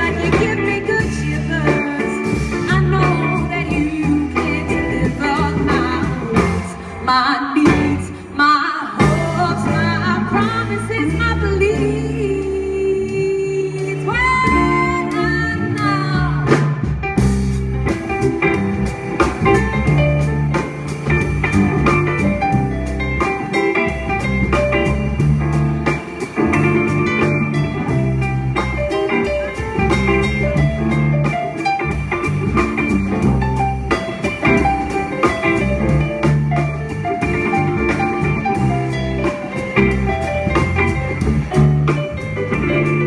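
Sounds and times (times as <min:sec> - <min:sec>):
live band playing: 0:00.0 - 0:43.0
steady drum beat: 0:13.9 - 0:43.0.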